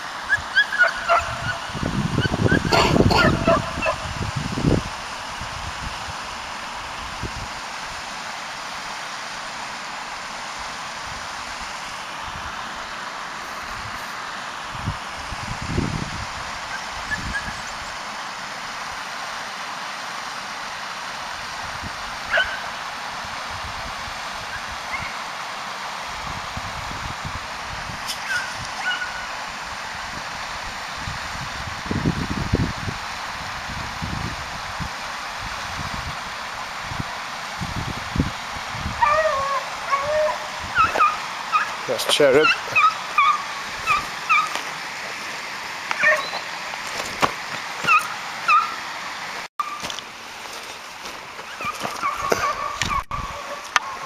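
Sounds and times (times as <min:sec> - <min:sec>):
stream rushing over rocks: 0:00.0 - 0:54.0
hounds baying: 0:00.3 - 0:04.1, 0:22.3 - 0:22.7, 0:28.2 - 0:29.3, 0:39.0 - 0:44.6, 0:45.9 - 0:46.6, 0:47.8 - 0:48.8, 0:51.4 - 0:54.0
wind buffeting microphone: 0:01.1 - 0:06.2, 0:14.7 - 0:17.7, 0:30.0 - 0:41.1, 0:51.6 - 0:54.0.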